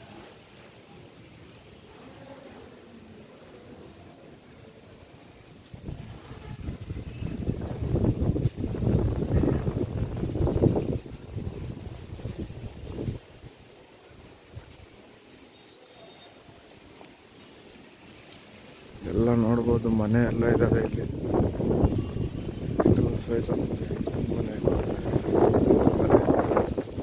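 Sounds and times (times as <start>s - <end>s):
wind buffeting microphone: 5.7s - 13.6s, 19.0s - 27.0s.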